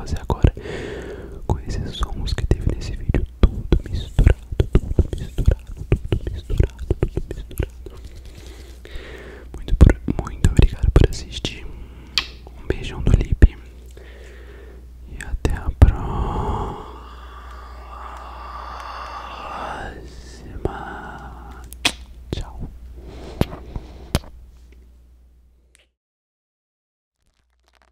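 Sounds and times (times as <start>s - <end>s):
person whispering: 0.0s - 0.6s, 1.3s - 8.8s, 9.4s - 11.8s, 12.5s - 13.8s, 15.0s - 21.7s, 22.3s - 22.8s
mouth sounds: 0.0s - 11.2s, 15.1s - 22.8s
soft breathy sound: 15.5s - 21.8s.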